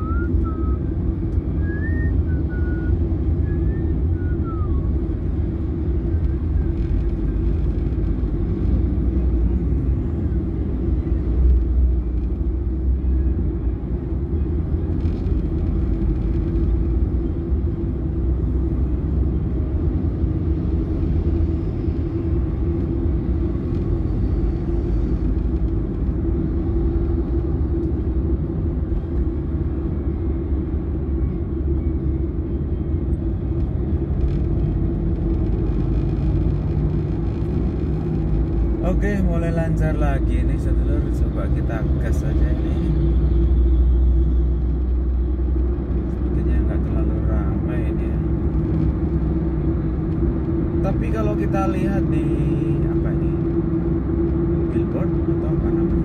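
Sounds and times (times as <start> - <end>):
car engine rumble: 0.0 - 56.0
road noise: 0.0 - 56.0.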